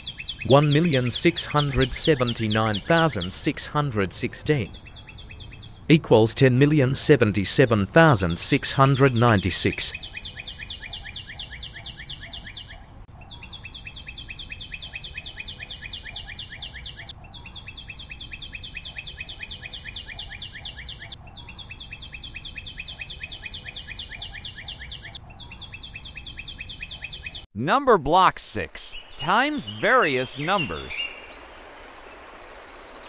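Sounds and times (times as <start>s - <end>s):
bird chirping trill: 0.0s - 5.9s, 8.5s - 33.0s.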